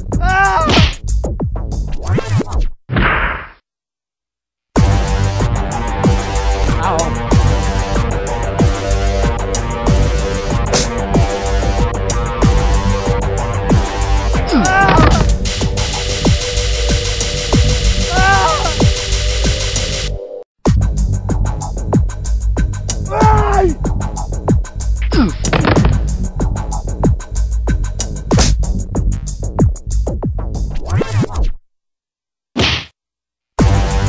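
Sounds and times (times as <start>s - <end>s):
whack sound effect: 14.8s - 15.3s, 32.6s - 32.9s.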